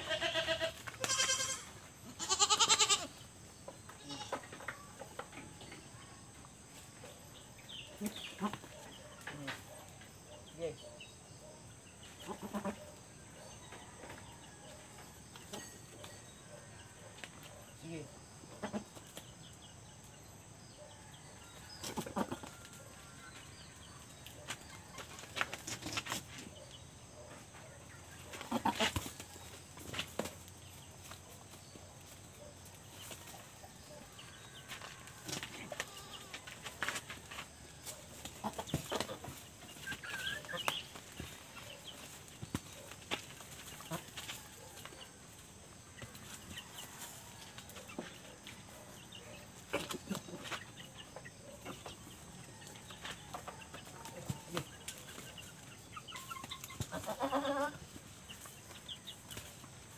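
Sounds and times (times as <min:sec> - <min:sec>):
goats bleating: 0:00.0 - 0:03.1, 0:04.0 - 0:04.4, 0:12.2 - 0:12.8, 0:28.5 - 0:28.9, 0:56.9 - 0:57.8.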